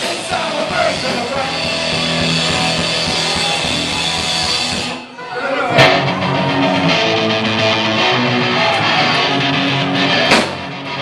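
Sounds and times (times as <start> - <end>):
punk rock band playing live: 0.0 - 11.0.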